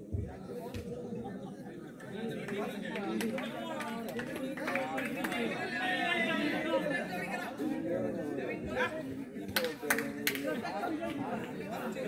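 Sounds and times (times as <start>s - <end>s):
voices chattering: 0.0s - 12.0s.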